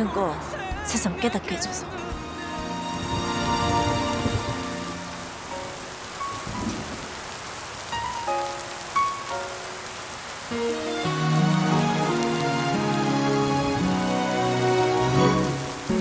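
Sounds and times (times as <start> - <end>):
soft background music: 0.0 - 16.0
steady rain falling: 2.1 - 16.0.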